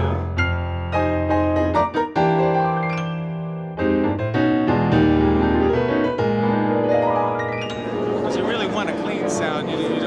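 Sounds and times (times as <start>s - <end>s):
held piano notes: 0.0s - 10.0s
man talking: 8.2s - 10.0s.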